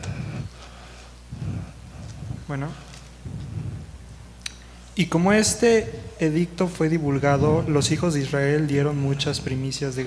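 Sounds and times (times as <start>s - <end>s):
low muffled rumble: 0.0s - 4.4s, 5.1s - 9.6s.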